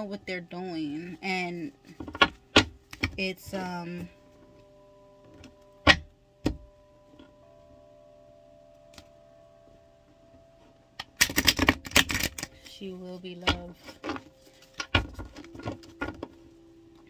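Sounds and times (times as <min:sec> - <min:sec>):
faint steady held tones: 0:00.0 - 0:17.0.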